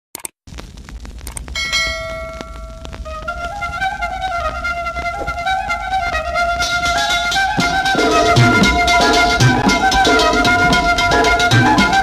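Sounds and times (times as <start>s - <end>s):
crackling hiss: 0.5s - 12.0s
bright bell ding: 1.6s - 2.8s.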